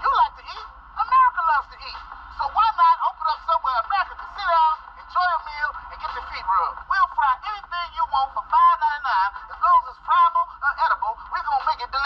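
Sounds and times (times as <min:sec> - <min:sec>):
man talking through small speaker: 0:00.0 - 0:12.0.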